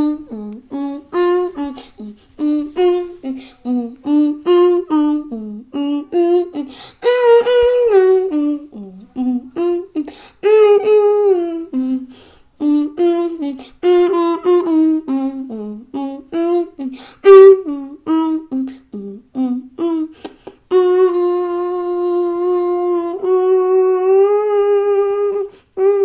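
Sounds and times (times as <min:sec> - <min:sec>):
person humming a tune: 0:00.0 - 0:26.0.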